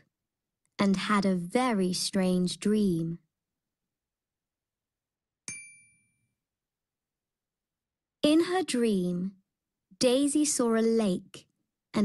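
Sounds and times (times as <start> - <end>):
bright bell ding: 5.5 - 6.3.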